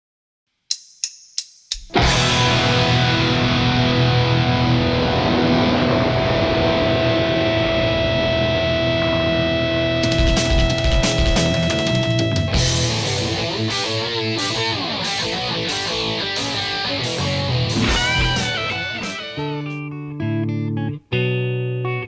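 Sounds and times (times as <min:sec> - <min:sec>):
distorted electric guitar metal: 0:01.9 - 0:20.1.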